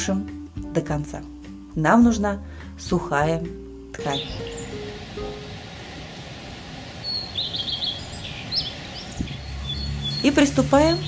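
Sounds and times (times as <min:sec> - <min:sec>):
steady background hiss: 0:03.6 - 0:09.4
small birds chirping: 0:04.0 - 0:05.6, 0:06.8 - 0:11.0.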